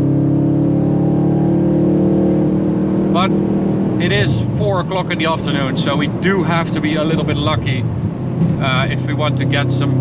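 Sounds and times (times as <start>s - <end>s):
car engine accelerating in cabin: 0.0s - 10.0s.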